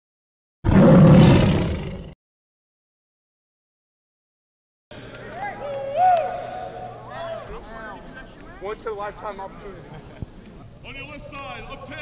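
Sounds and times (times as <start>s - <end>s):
tiger roar: 0.6s - 2.2s.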